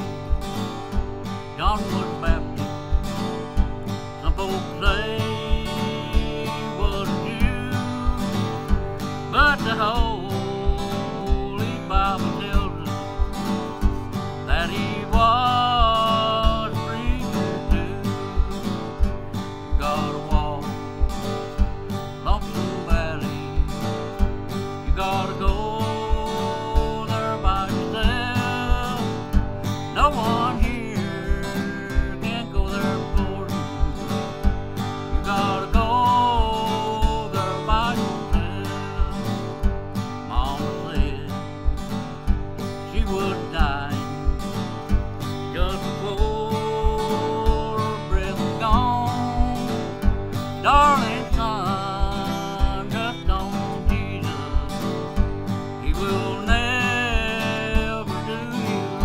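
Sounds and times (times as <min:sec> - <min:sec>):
acoustic guitar strumming: 0:00.0 - 0:59.0
bass notes on guitar: 0:00.0 - 0:59.0.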